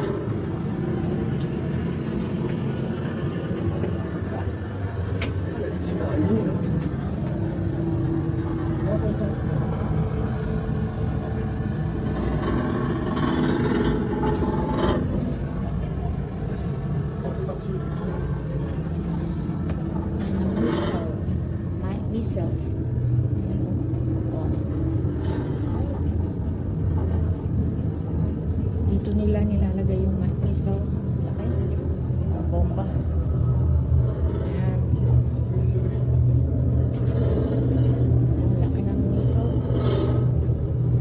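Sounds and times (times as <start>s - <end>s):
steady low rumble: 0.0s - 41.0s.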